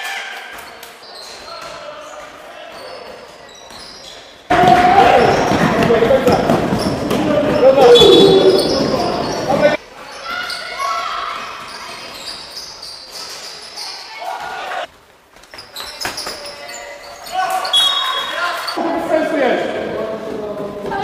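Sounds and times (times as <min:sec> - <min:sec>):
many voices shouting in echoing hall: 0:00.0 - 0:03.1, 0:04.4 - 0:14.9
gym sounds: 0:00.6 - 0:14.9.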